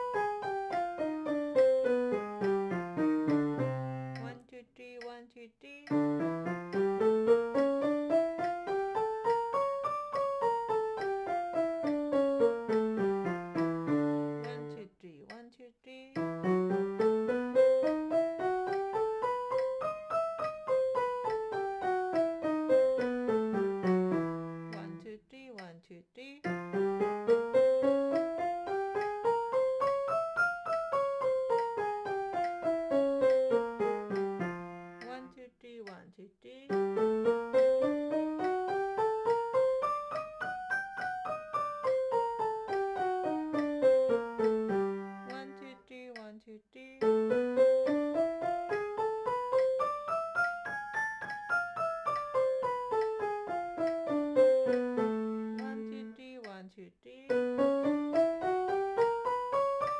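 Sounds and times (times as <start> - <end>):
piano playing scales: 0.0 - 4.4, 5.9 - 14.8, 16.1 - 25.0, 26.4 - 35.3, 36.7 - 45.9, 47.0 - 56.2, 57.3 - 59.9.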